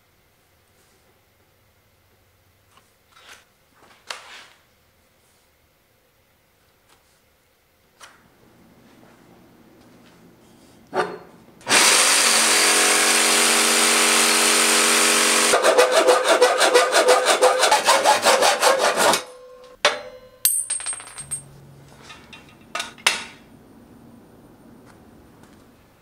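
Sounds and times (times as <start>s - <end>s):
loud power tool: 11.6s - 19.4s
hacksaw cutting steel: 11.7s - 19.6s
metal clinks: 19.9s - 21.6s.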